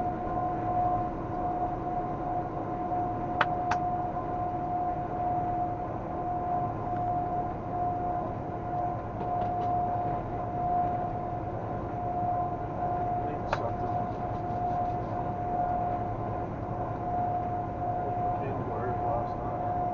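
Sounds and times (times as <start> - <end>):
constant high hum: 0.0 - 19.9.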